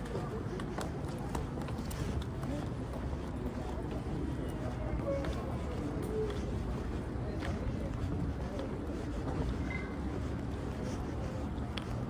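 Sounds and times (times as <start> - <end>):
faint distant voices: 0.0 - 12.0
footsteps on pavement: 0.0 - 12.0.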